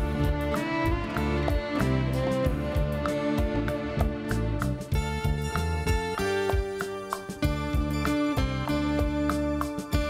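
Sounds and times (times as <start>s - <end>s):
keyboards: 0.0s - 10.0s
percussion beat: 0.0s - 10.0s
violin melody: 0.0s - 10.0s.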